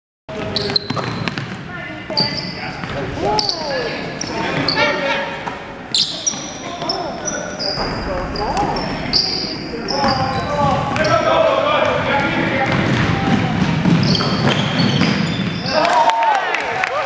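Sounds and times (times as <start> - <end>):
sneakers squeaking on gym floor: 0.3 - 12.0, 12.7 - 15.8
sharp knock: 7.8 - 11.0.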